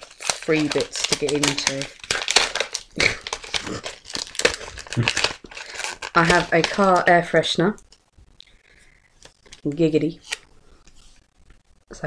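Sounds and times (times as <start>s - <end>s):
gift wrapping torn and crumpled: 0.0s - 8.1s, 9.1s - 11.2s.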